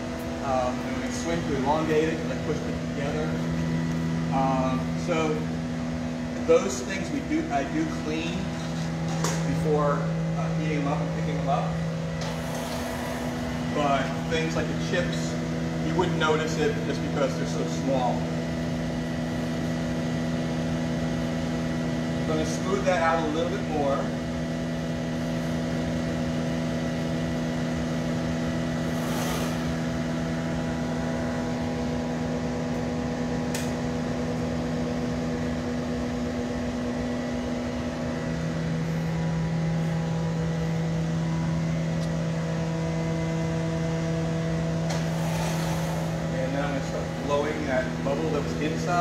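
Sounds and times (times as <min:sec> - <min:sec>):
droning hum of burner blowers: 0:00.0 - 0:49.0.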